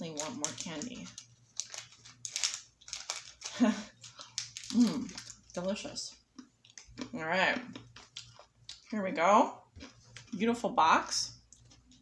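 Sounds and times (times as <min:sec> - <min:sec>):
wrapper crinkling: 0:00.0 - 0:06.0
candy being chewed: 0:00.0 - 0:09.0, 0:09.7 - 0:10.4.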